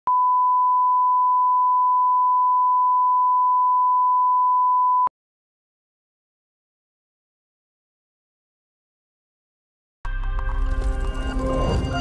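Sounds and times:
steady test tone beep: 0.1 - 5.1.

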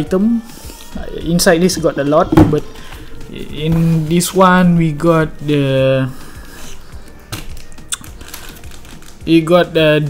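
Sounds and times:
plastic film rustling: 2.8 - 9.8.

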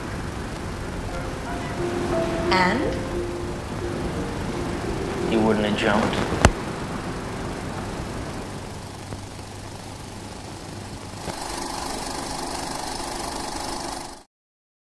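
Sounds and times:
steady hiss and hum: 0.0 - 11.7
film projector running: 11.2 - 14.2.

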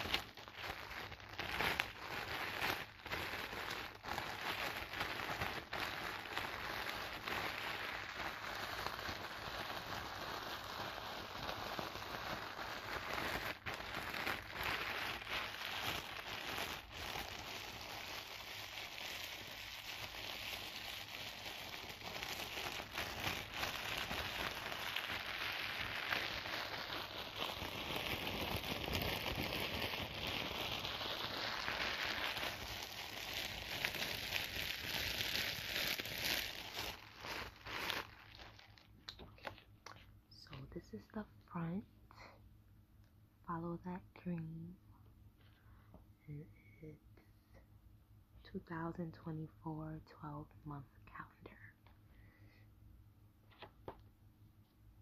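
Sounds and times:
plastic wrapping crinkling: 0.0 - 41.1, 53.4 - 54.2.

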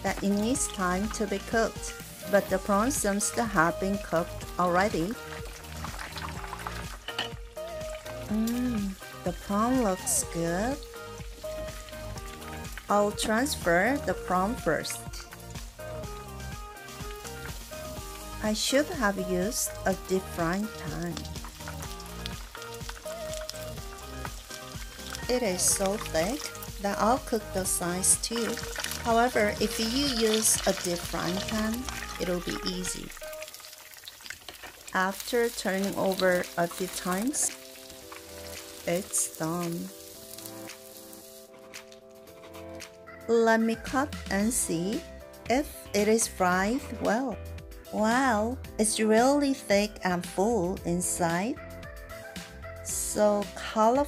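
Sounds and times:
oil sizzling in frying pan: 0.0 - 42.0
background music: 0.0 - 54.0.

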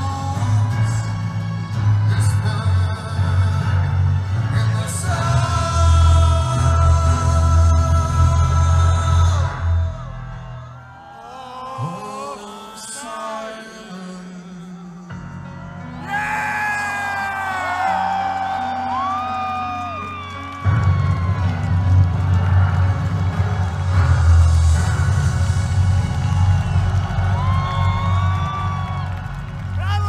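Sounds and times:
crowd cheering and screaming: 0.0 - 4.4, 5.0 - 30.0
live song: 0.0 - 30.0
loud low rumble: 20.9 - 30.0.

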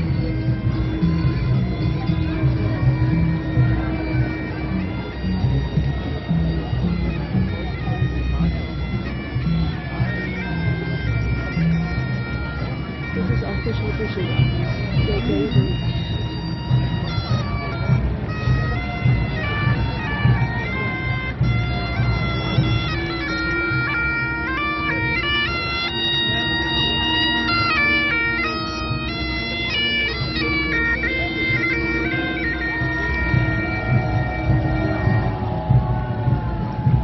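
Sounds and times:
bagpipe chanter melody: 0.0 - 37.0
bagpipe drone: 0.0 - 37.0.

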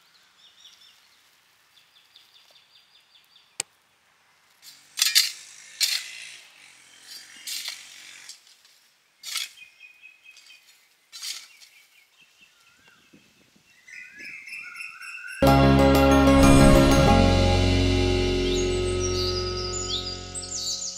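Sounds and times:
birds chirping and whistling: 18.5 - 20.9.

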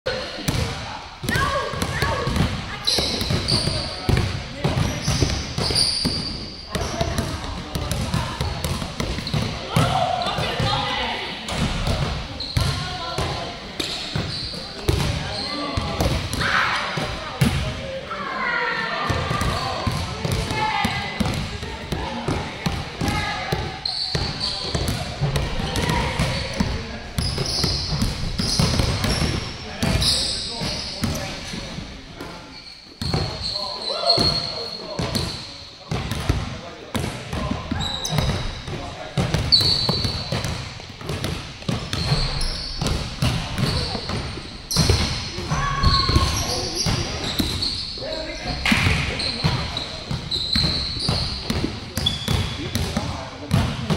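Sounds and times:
basketballs bouncing on gym floor: 0.4 - 17.8, 19.0 - 32.4, 33.0 - 47.8, 48.4 - 53.9.

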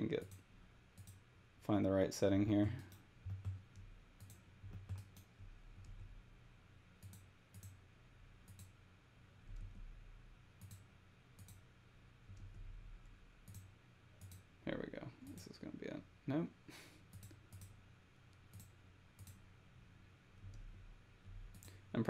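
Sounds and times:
low steady hum: 0.0 - 22.0
computer mouse clicks: 0.2 - 0.4, 1.0 - 1.2, 2.7 - 6.0, 7.0 - 7.8, 8.4 - 8.8, 10.6 - 11.6, 13.4 - 14.5, 17.1 - 19.4, 21.5 - 21.8.

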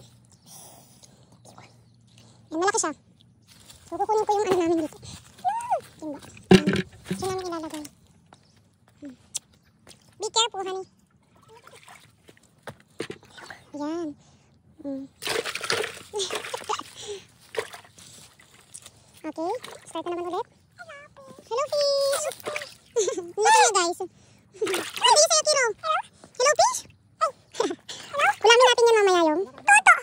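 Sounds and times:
child's high-pitched vocal sounds: 3.9 - 6.3, 14.8 - 15.2, 20.2 - 30.0.

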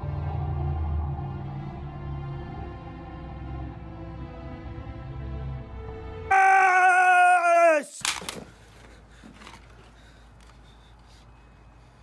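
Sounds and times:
man yelling: 6.3 - 8.0.

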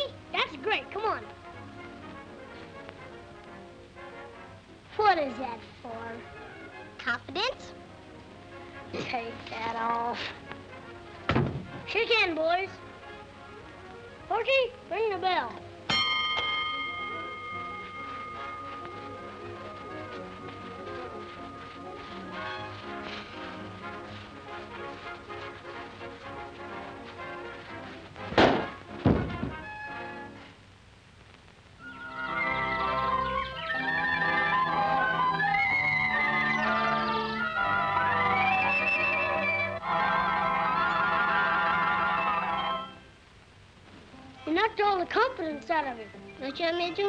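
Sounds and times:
orchestral film music: 0.0 - 30.6, 31.8 - 43.1
body thumps on floor: 11.3 - 11.9, 28.3 - 29.7
ring bell tone: 15.9 - 22.3.

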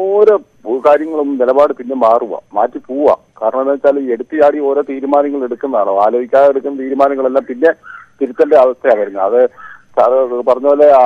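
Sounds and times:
person talking over telephone: 0.6 - 11.0.

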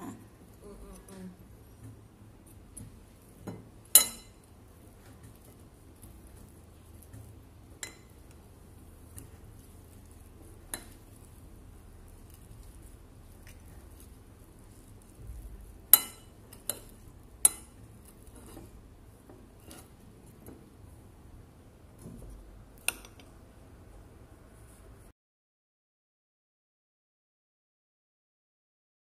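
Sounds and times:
metal spoon clinking on ceramic plate: 4.0 - 4.4, 15.9 - 17.8.

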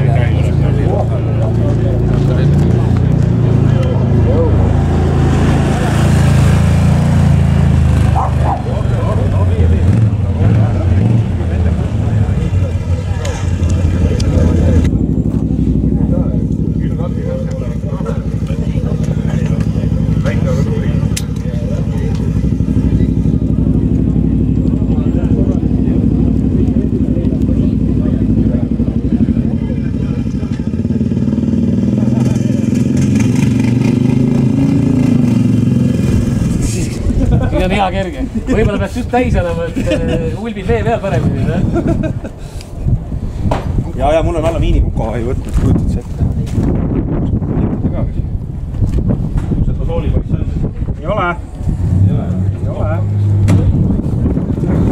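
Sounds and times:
quad bike engines idling: 0.0 - 46.6.

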